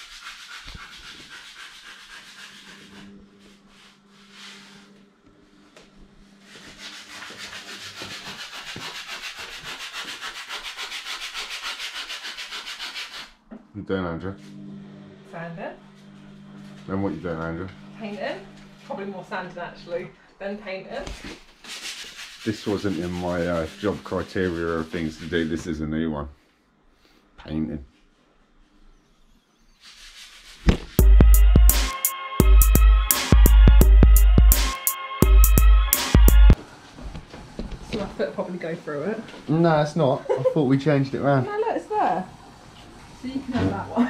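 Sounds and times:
sandpaper rubbing on wall: 0:00.0 - 0:05.0, 0:06.3 - 0:13.4, 0:21.2 - 0:25.8, 0:29.7 - 0:33.4.

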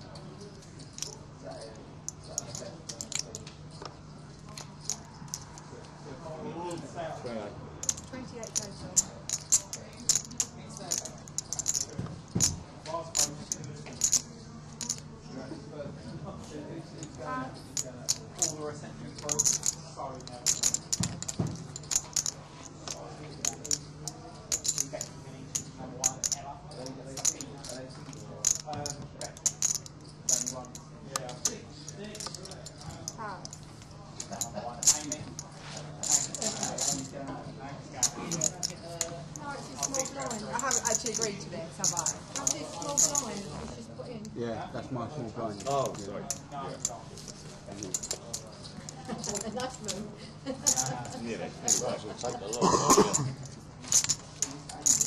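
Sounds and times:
steady low hum: 0:00.0 - 0:55.0
poker chips clicking together: 0:07.8 - 0:11.9, 0:14.8 - 0:15.0, 0:19.2 - 0:23.8, 0:28.4 - 0:30.6, 0:51.7 - 0:53.3, 0:53.9 - 0:55.0.

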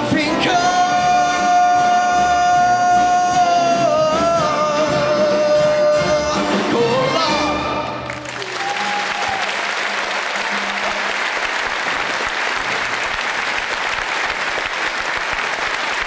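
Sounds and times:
audience applauding: 0:07.8 - 0:16.0.

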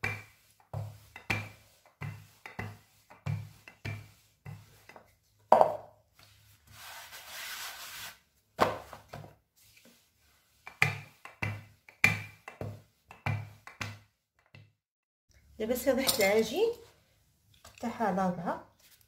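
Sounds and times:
rolling pin rolling across dough: 0:00.0 - 0:14.6.

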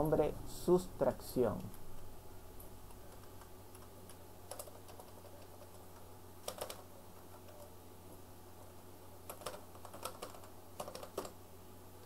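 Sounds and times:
low steady hum: 0:00.0 - 0:12.0
keyboard typing: 0:02.9 - 0:07.7, 0:09.2 - 0:11.4.

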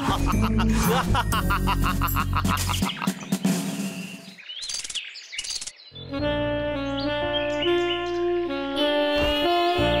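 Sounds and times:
birds chirping: 0:01.9 - 0:09.3
cartoon music: 0:06.1 - 0:10.0.

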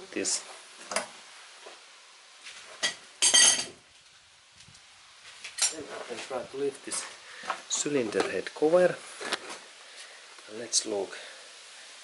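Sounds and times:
metal tools clinking: 0:03.2 - 0:03.8, 0:05.6 - 0:05.9.

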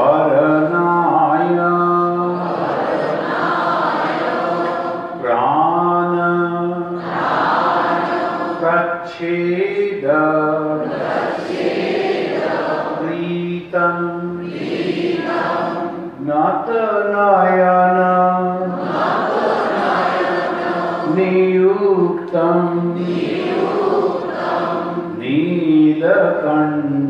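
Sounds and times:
man chanting a hymn: 0:00.0 - 0:02.6, 0:05.2 - 0:07.0, 0:08.5 - 0:10.9, 0:12.7 - 0:14.6, 0:16.1 - 0:18.8, 0:21.0 - 0:24.0, 0:25.0 - 0:27.0.

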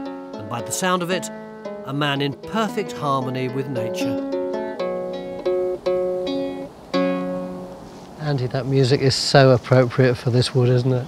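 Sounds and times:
wooden lyre plucked: 0:00.0 - 0:07.9.

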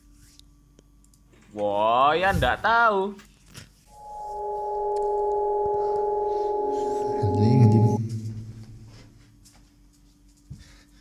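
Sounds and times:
held electronic tone: 0:03.9 - 0:09.2.

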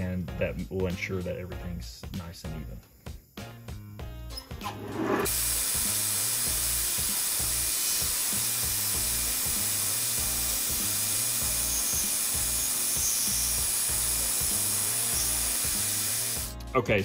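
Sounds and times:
background music beat: 0:03.1 - 0:06.2, 0:13.4 - 0:17.0
metal lathe cutting brass: 0:09.0 - 0:16.4.

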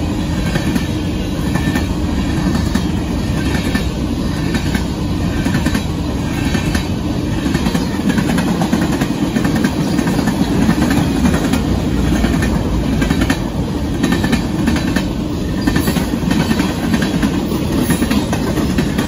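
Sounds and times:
steel wheels rumbling on rails: 0:00.0 - 0:19.0
wheels clicking over rail joints: 0:00.0 - 0:19.0.

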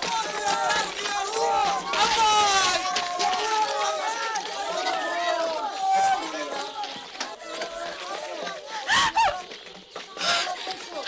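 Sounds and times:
low unintelligible voices: 0:00.0 - 0:11.0.

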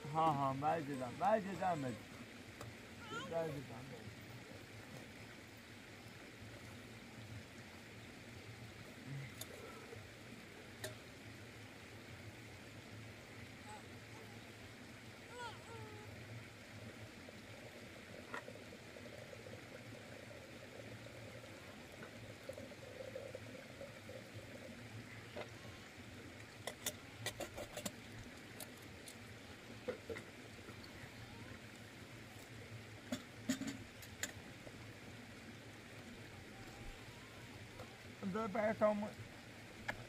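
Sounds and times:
faint steady background noise: 0:00.0 - 0:40.0
metal kettle clinks and knocks: 0:33.5 - 0:33.8.

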